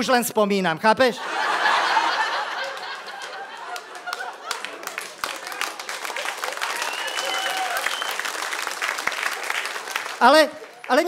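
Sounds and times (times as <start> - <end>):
audience laughing: 1.2 - 7.0
audience applauding: 1.5 - 11.0
man speaking: 10.2 - 11.0.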